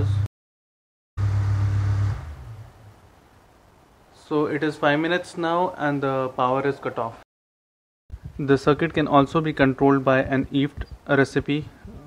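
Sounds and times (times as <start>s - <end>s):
electric fan motor humming: 1.2s - 3.1s.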